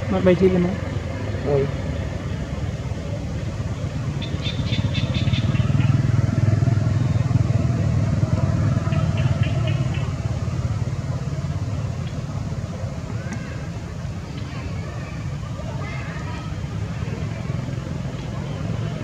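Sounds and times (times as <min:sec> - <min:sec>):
vehicle engine passing by: 0:00.0 - 0:19.0.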